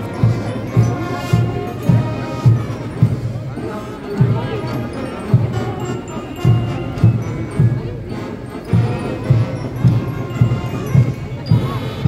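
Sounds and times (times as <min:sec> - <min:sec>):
heavy bass drum beats: 0:08.7 - 0:12.0.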